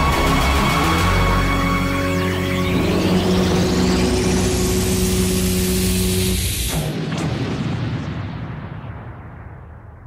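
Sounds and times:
electronic music with held tones: 0.0 - 6.5
rising synth sweep: 0.0 - 6.8.

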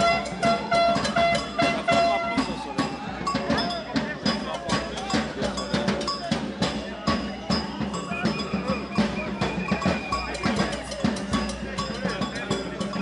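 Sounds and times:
cowbell strikes: 0.0 - 13.0
crowd voices: 0.0 - 13.0
drums: 0.0 - 13.0.

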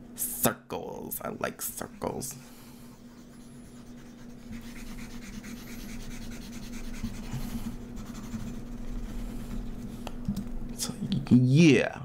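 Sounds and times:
low electrical hum: 0.0 - 12.0
mouse rubbing on desk: 1.7 - 10.0.

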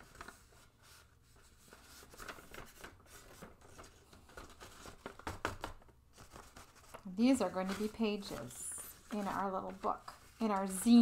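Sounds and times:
crisp paper crackles: 0.0 - 11.0
paper rustling being folded: 0.0 - 11.0.

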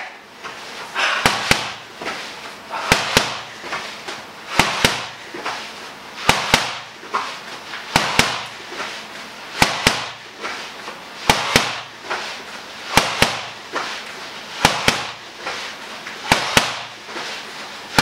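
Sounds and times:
boxing gloves hitting pads: 1.0 - 2.2, 2.8 - 3.8, 4.5 - 5.5, 6.2 - 6.9, 7.9 - 8.6, 9.6 - 10.3, 11.2 - 12.0, 12.9 - 13.6, 14.6 - 15.2, 16.2 - 17.0.

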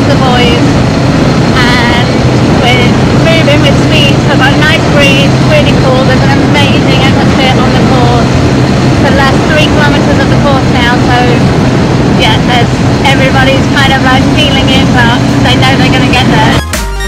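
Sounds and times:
motor rickshaw engine running: 0.0 - 16.6
road and wind noise: 0.0 - 16.6.

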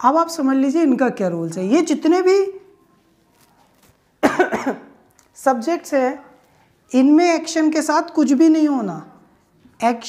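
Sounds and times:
man coughing: 4.2 - 4.9.

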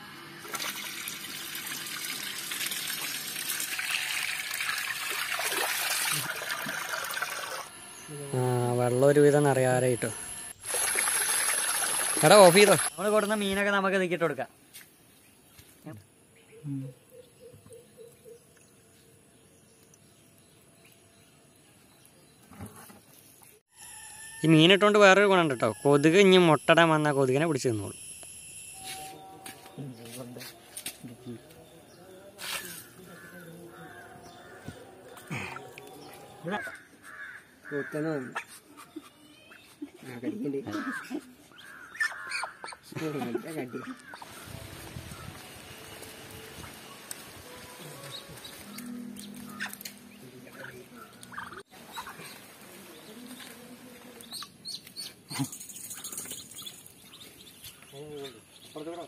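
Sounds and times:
crows cawing: 32.7 - 35.8, 36.4 - 38.5, 40.6 - 42.9, 48.7 - 50.0
ducklings peeping: 48.1 - 52.4.

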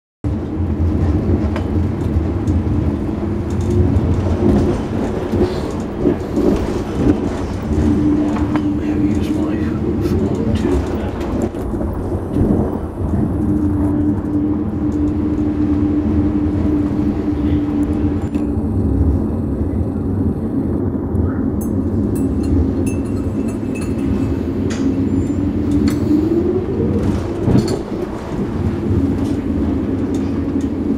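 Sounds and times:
train rumbling on rails: 0.2 - 30.9
steady hum: 0.3 - 30.9.

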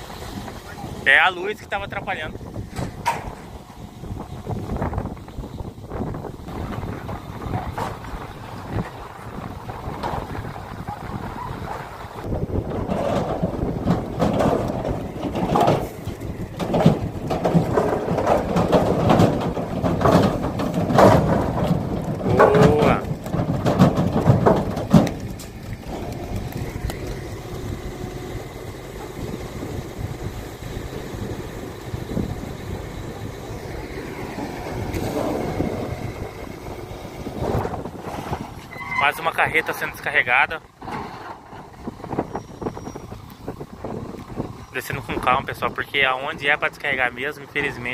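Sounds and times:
hooves clattering on metal floor: 9.6 - 29.3.

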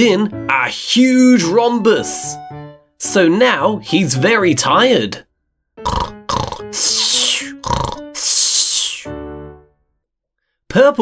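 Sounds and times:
cartoon snoring: 5.9 - 9.1.

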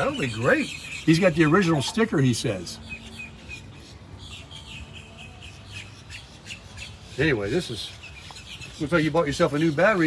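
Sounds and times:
bird chirping: 0.0 - 10.0.

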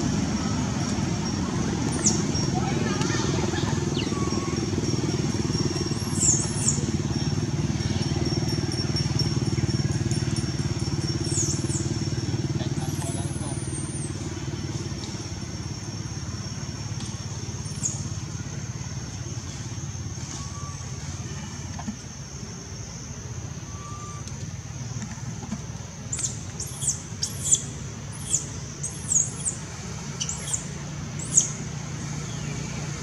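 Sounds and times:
high insect-like whine: 0.0 - 33.0
vehicle engine rumbling: 0.0 - 33.0.

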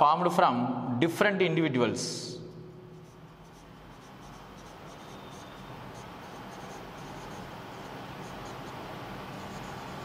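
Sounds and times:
marker writing on whiteboard: 2.9 - 10.0.

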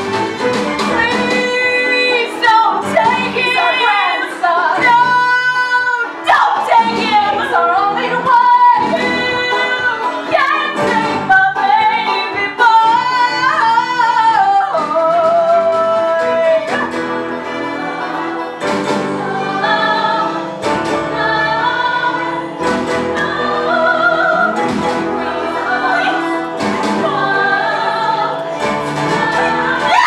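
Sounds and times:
live band accompaniment: 0.0 - 30.0
woman singing: 0.8 - 17.1, 21.1 - 30.0.

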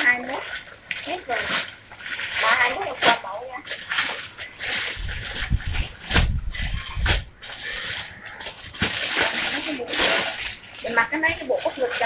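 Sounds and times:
fabric and packaging rustling: 0.0 - 12.0.

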